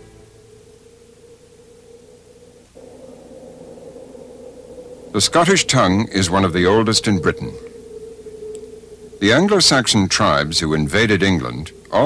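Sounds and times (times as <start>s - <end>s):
low hiss: 0.0s - 12.0s
quiet sustained tone: 0.0s - 12.0s.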